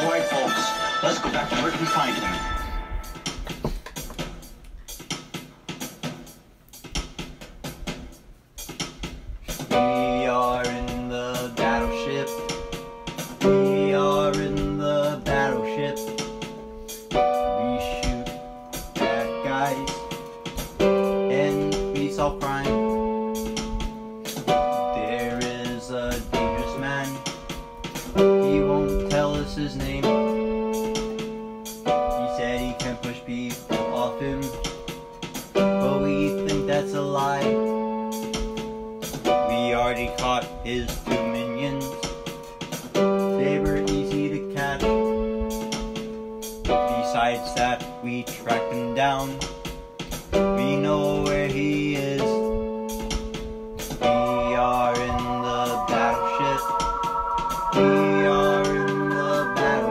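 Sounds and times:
percussive keyboard beat: 0.0 - 59.9
sustained keyboard chords: 51.6 - 59.9.

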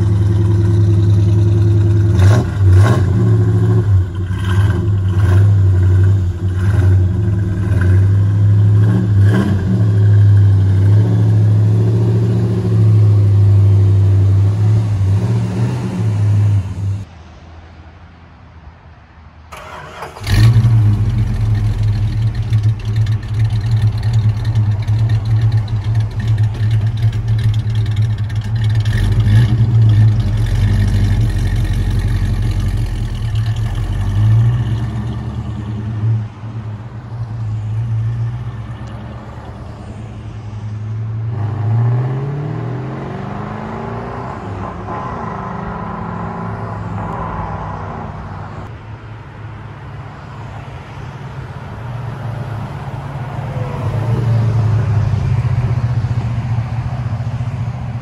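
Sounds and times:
car engine idling: 0.0 - 2.8, 19.5 - 37.7
engine throttle blips: 19.6 - 36.4.

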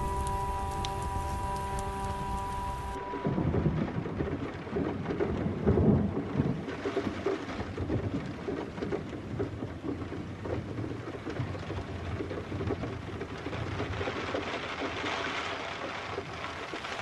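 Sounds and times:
rolling thunder: 0.0 - 14.1
rain: 0.0 - 17.0.

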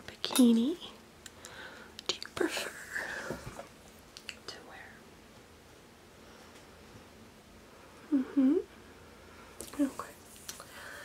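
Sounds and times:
woman whispering: 2.0 - 3.1, 4.4 - 5.0, 9.6 - 10.2.

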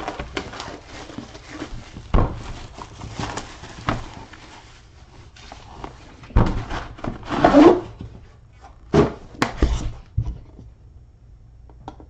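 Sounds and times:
plastic wrap rustling: 0.0 - 10.2.

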